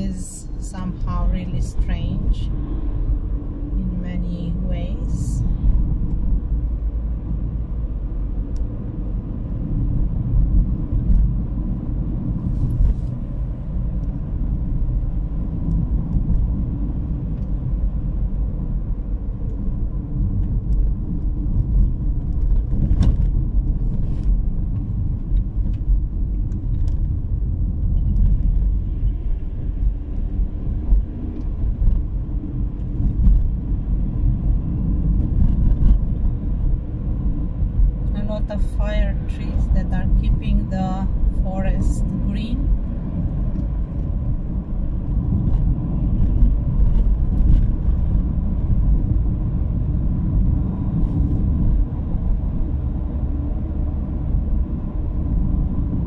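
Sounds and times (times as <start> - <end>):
car engine and road noise: 0.0 - 56.0.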